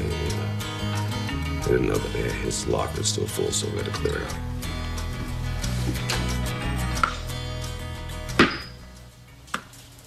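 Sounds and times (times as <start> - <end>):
soft music: 0.0 - 10.0.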